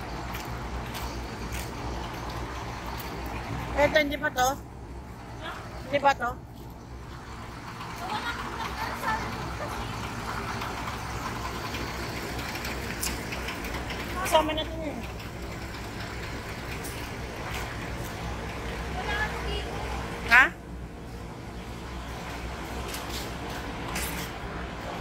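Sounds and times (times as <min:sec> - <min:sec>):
large vehicle engines rumbling: 0:00.0 - 0:25.0.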